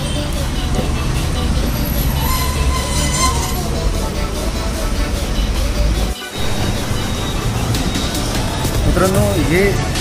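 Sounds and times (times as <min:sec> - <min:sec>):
low traffic rumble: 0:00.0 - 0:10.0.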